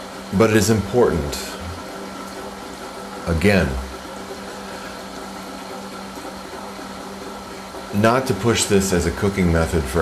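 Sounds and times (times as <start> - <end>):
pump motor humming: 0.0 - 10.0.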